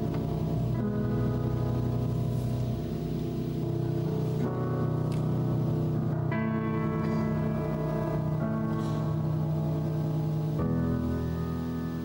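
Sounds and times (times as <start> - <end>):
sustained piano chords: 0.0 - 12.0.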